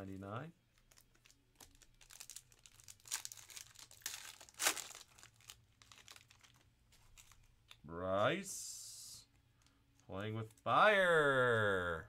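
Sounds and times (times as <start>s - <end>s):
foil wrapper crinkling and tearing: 0.8s - 7.6s.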